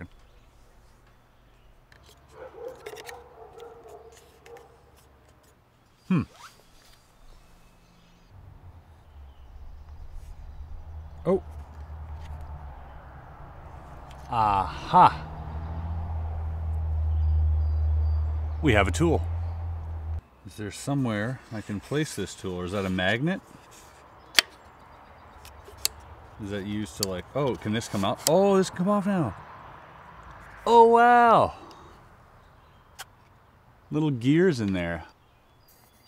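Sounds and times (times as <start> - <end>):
person murmuring hmm: 6.0 - 6.4, 14.2 - 15.3
low rumble: 8.3 - 20.2.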